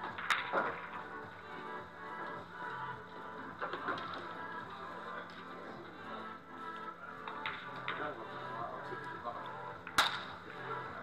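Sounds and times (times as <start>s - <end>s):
pool balls cracking: 0.0s - 1.0s.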